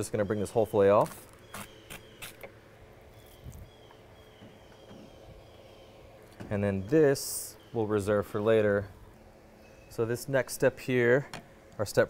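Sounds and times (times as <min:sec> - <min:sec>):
small bird chirping: 0:00.2 - 0:02.5, 0:03.1 - 0:10.0.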